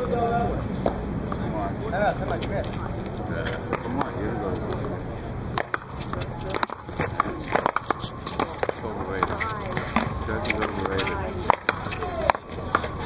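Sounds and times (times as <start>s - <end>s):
voices talking: 0.0s - 13.0s
paddles smacking rubber ball: 5.5s - 13.0s.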